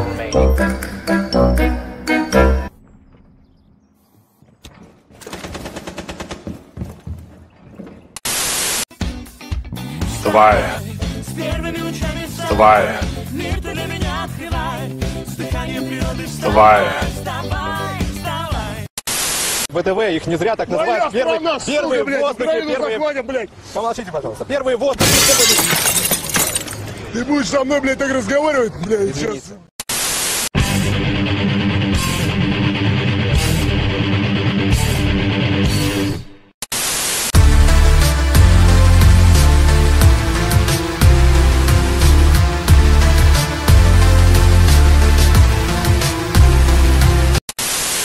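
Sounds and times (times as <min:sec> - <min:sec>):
static-like hiss burst: 0:19.1 - 0:19.7, 0:29.8 - 0:30.5, 0:36.7 - 0:37.4, 0:47.6 - 0:48.0
glass shattering: 0:25.0 - 0:27.0.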